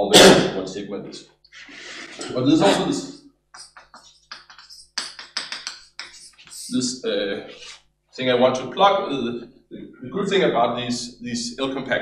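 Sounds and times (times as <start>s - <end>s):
chalk tapping and scraping on blackboard: 3.6s - 6.7s.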